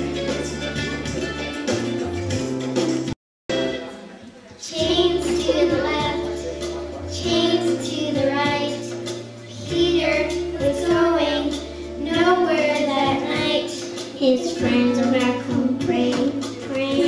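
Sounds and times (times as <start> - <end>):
instrumental accompaniment: 0.0 - 17.0
children's choir singing: 4.6 - 17.0.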